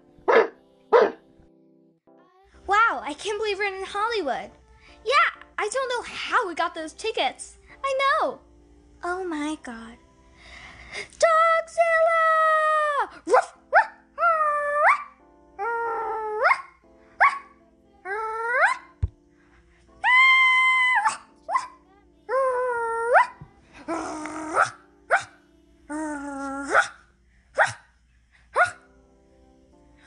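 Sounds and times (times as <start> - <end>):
dog barking: 0.3 - 1.2, 16.4 - 17.5, 24.6 - 25.3, 26.7 - 27.0, 27.6 - 27.9, 28.6 - 28.8.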